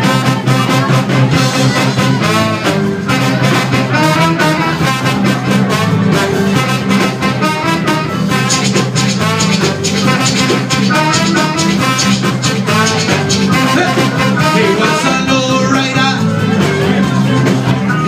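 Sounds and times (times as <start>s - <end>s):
horn section playing a tune: 0.0s - 18.0s
steady drum beat: 0.0s - 18.0s.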